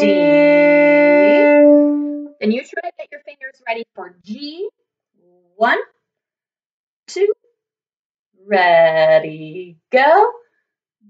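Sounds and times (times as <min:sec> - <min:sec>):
violin held note: 0:00.0 - 0:02.3.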